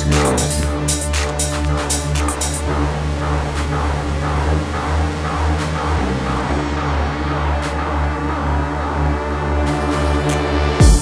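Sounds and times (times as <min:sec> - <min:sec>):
deep pulsing bass line: 0:00.0 - 0:11.0
steady synth tones: 0:00.0 - 0:11.0.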